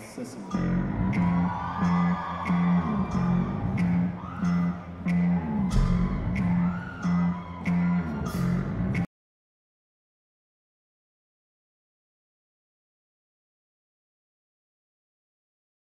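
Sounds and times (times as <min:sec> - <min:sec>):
repeating guitar figure: 0:02.8 - 0:09.0
drum beat: 0:05.6 - 0:07.0.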